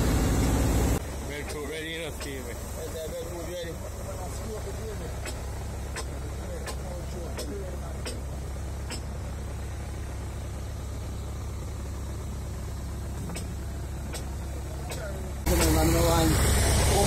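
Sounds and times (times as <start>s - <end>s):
diesel engine idling: 0.0s - 17.0s
voices: 1.1s - 10.5s, 11.9s - 17.0s.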